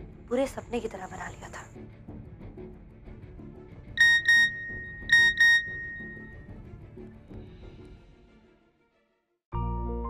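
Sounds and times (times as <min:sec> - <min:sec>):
soft background music: 0:00.0 - 0:10.0
phone alert high beeps: 0:04.0 - 0:06.4.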